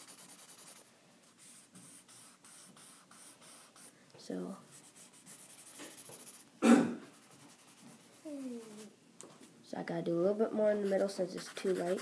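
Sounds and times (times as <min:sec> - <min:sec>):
blending stump scratching on paper: 0:10.8 - 0:12.0.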